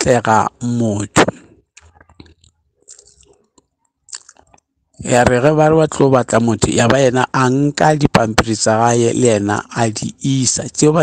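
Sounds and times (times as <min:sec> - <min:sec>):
mouth clicks and smacks: 0:01.1 - 0:04.8.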